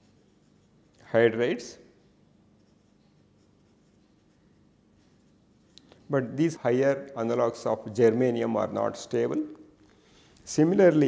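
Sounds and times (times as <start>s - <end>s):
marker writing on paper: 2.6s - 5.8s.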